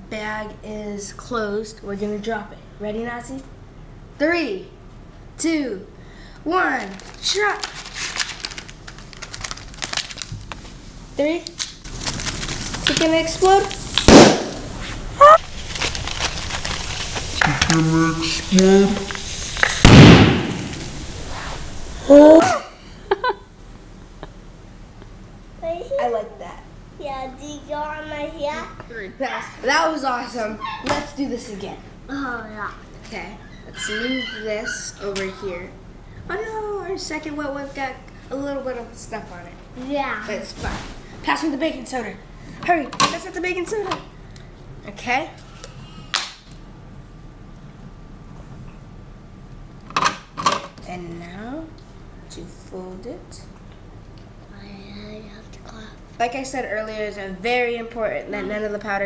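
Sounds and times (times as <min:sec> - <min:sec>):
faint steady hum: 0:00.0 - 0:59.0
plastic bag bursting with a pop: 0:11.6 - 0:17.8, 0:19.1 - 0:21.0
child crying out: 0:22.1 - 0:22.8.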